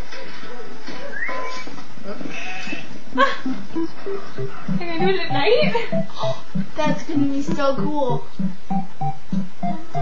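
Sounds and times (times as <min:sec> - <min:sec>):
sheep bleating: 0:02.3 - 0:02.9.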